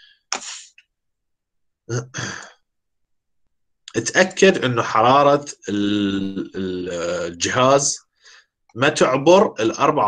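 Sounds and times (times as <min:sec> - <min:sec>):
man sighing: 0:01.9 - 0:02.6
man speaking: 0:03.9 - 0:08.1, 0:08.7 - 0:10.0.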